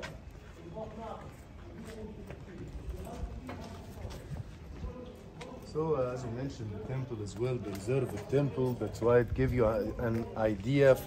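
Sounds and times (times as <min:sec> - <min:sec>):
faint voices: 0:00.0 - 0:11.0
footsteps on stone paving: 0:00.0 - 0:11.0.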